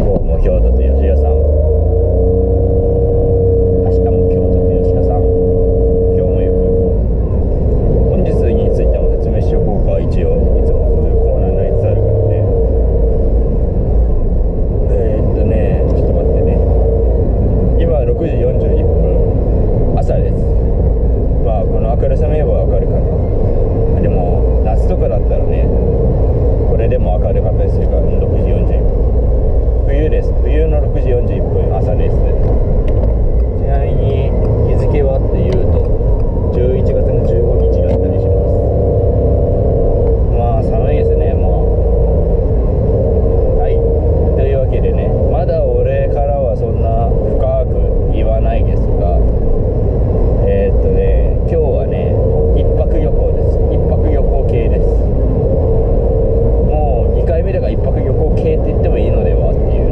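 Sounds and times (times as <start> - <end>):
man talking: 0.0 - 2.5, 3.4 - 7.0, 8.0 - 12.8, 14.9 - 17.0, 17.8 - 20.6, 21.4 - 23.2, 23.9 - 25.9, 26.7 - 28.9, 29.8 - 32.5, 33.5 - 35.9, 36.5 - 38.7, 40.2 - 42.0, 43.5 - 49.3, 50.4 - 55.1, 56.6 - 59.9
car engine and tyres rumble: 0.0 - 59.9.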